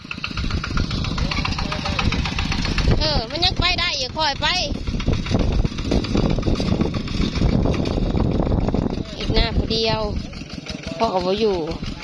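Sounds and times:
diesel engine running under load: 0:00.0 - 0:12.0.

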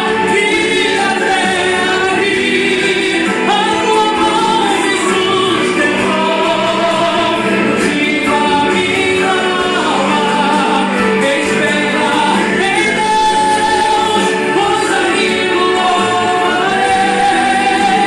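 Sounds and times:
backing music: 0:00.0 - 0:18.0.

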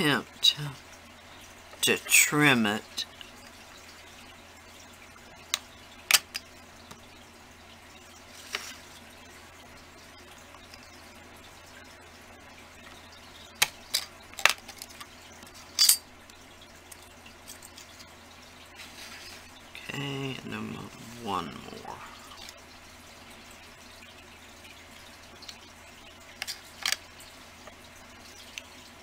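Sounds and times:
low steady hum: 0:00.0 - 0:29.0.

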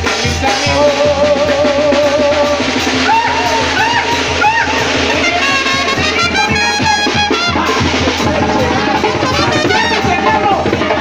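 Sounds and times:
steady drum beat: 0:00.0 - 0:11.0
brass sustained chord: 0:04.9 - 0:07.8.

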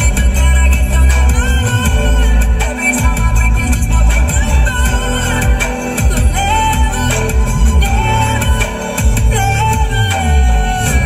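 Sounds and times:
electronic music with heavy bass: 0:00.0 - 0:11.0.

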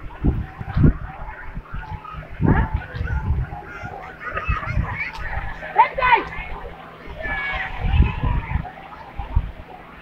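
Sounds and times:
crowd calls and shouts: 0:00.0 - 0:10.0
wind on microphone: 0:00.0 - 0:10.0.

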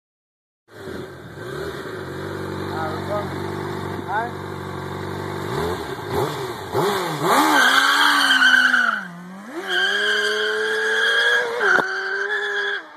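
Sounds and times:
sport bike engine revving: 0:00.7 - 0:12.9
tire squealing: 0:06.1 - 0:12.9.

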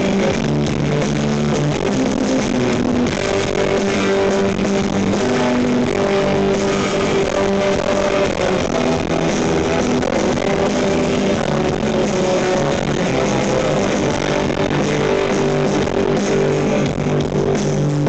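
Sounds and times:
electric guitar: 0:00.0 - 0:18.0
rock band playing: 0:00.0 - 0:18.0.

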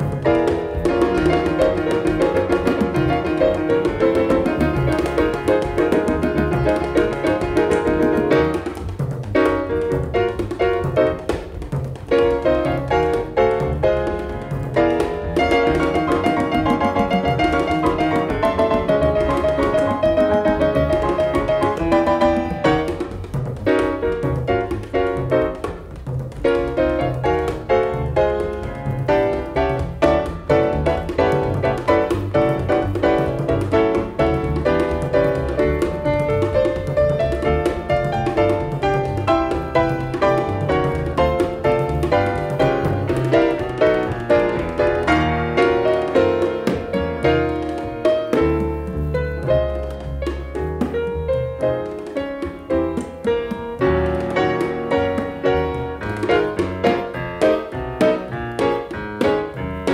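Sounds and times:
acoustic piano ballad: 0:00.0 - 0:59.9
bass: 0:00.0 - 0:59.9.

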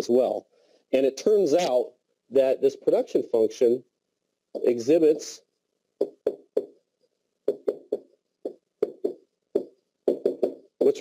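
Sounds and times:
stylus tapping on whiteboard: 0:04.5 - 0:04.8, 0:06.0 - 0:06.8, 0:07.4 - 0:11.0.

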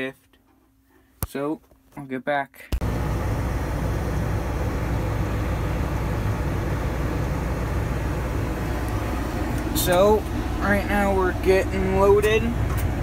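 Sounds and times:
tractor engine running: 0:02.8 - 0:13.0.

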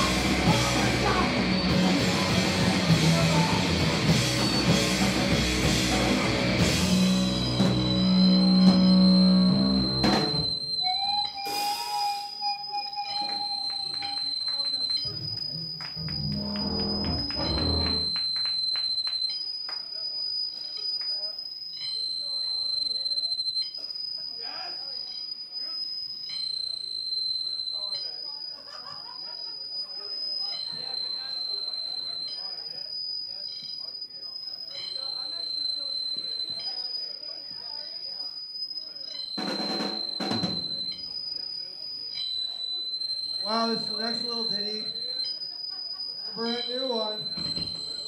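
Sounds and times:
punk band bass and drums: 0:00.0 - 0:10.6
high-pitched electronic tone: 0:00.0 - 0:18.7
crowd chatter: 0:00.0 - 0:19.0, 0:26.7 - 0:48.0.

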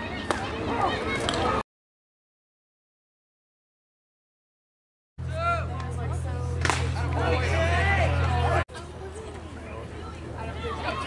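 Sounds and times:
spectators chatting: 0:00.0 - 0:01.6, 0:05.2 - 0:11.0
steady low hum: 0:05.2 - 0:08.7.

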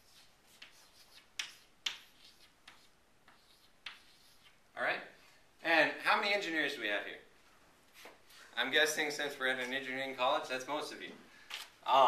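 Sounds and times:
chalk tapping and scraping: 0:00.0 - 0:04.6.

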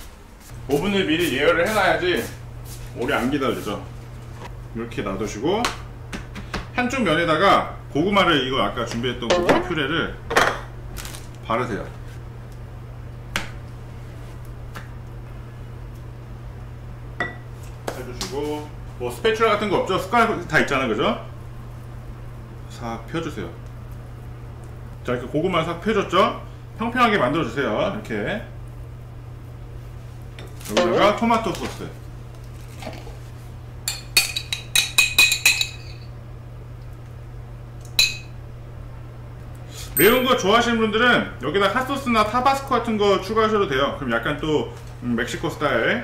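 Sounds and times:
low hum: 0:07.3 - 0:17.8, 0:18.7 - 0:25.4, 0:35.9 - 0:43.7.

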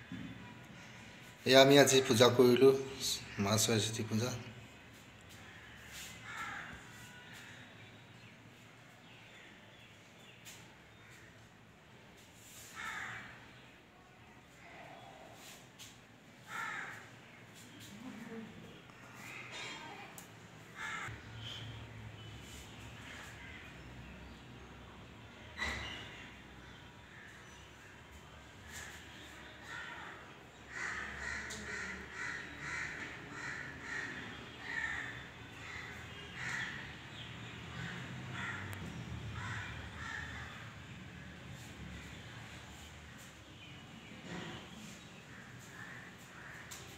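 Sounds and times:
crow cawing: 0:05.4 - 0:07.7, 0:12.7 - 0:13.4, 0:16.4 - 0:17.4, 0:20.8 - 0:21.7, 0:29.6 - 0:40.9, 0:44.3 - 0:46.9.

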